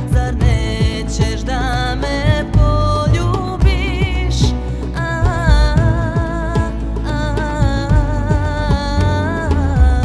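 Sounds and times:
deep beat: 0.0 - 10.0
woman singing with vibrato: 0.0 - 10.0.

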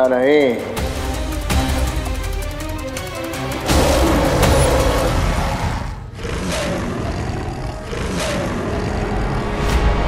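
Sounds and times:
deep gorilla roar and rumble: 3.7 - 9.6.

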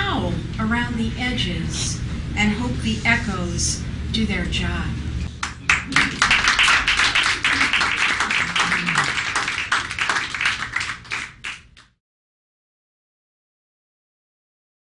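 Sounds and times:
audience applause: 5.4 - 11.8.

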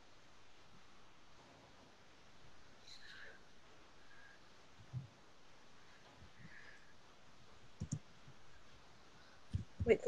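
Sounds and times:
computer clicks: 7.8 - 8.1.

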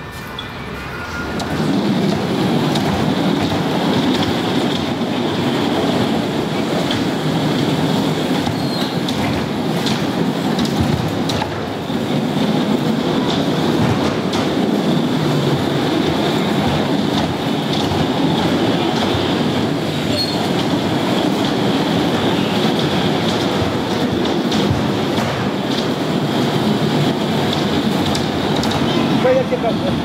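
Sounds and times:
bumper cars rumbling: 0.0 - 30.0.

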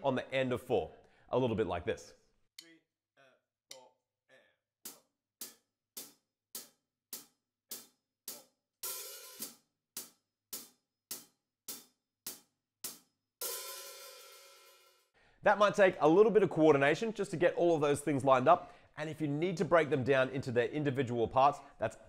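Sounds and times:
hi-hat cymbals struck: 4.9 - 14.9
open hi-hat sizzle: 5.4 - 15.0.

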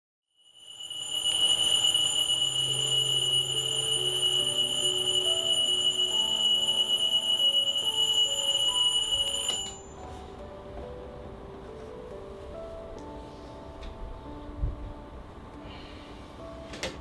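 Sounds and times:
alarm clock high-pitched tone: 0.3 - 10.1.

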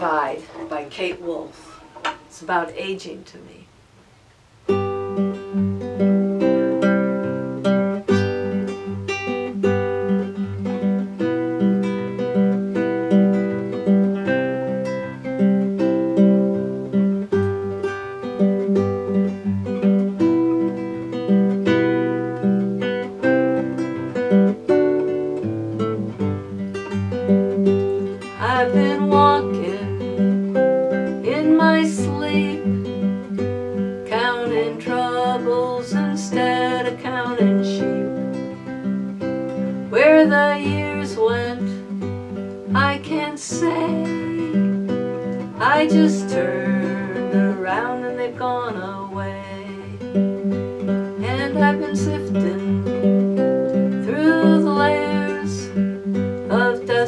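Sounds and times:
nylon-string guitar: 0.0 - 57.0
woman singing: 28.3 - 30.1, 31.1 - 32.8, 34.0 - 38.2, 39.9 - 41.9, 42.7 - 50.0, 51.2 - 53.0, 53.9 - 57.0.

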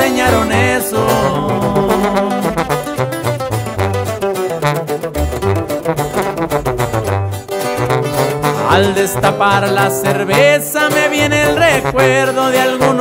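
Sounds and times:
acoustic guitar strummed: 0.0 - 13.0
tuba bass line: 0.0 - 13.0.

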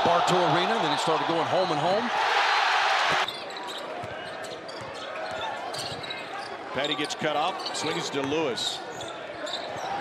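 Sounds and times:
loud arena crowd noise: 0.0 - 10.0.

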